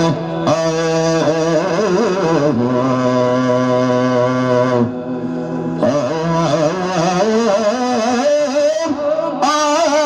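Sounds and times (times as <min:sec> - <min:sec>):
man singing unaccompanied: 0:00.0 - 0:04.9, 0:05.8 - 0:10.0.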